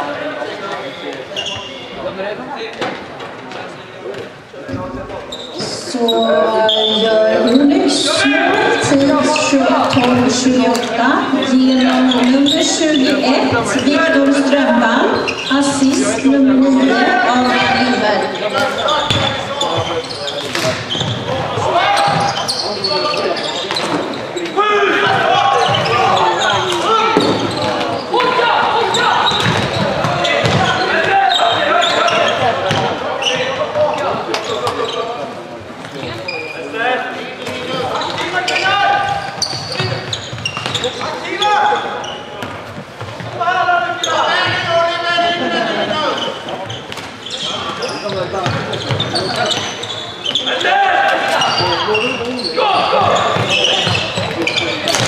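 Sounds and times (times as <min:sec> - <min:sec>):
people calling out: 0:05.7 - 0:19.1.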